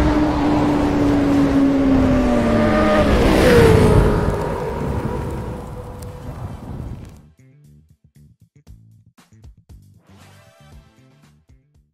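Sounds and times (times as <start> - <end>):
motorcycle engine passing by: 0.0 - 7.2.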